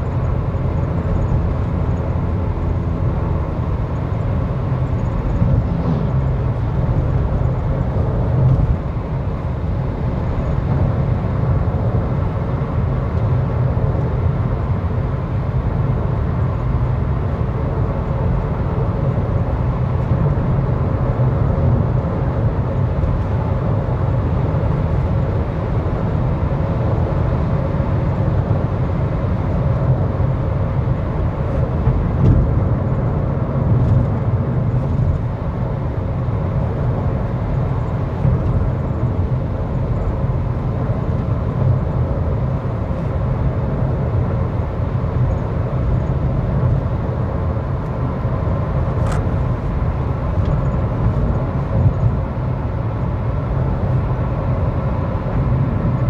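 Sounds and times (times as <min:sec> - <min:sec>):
car cabin road rumble: 0:00.0 - 0:56.0.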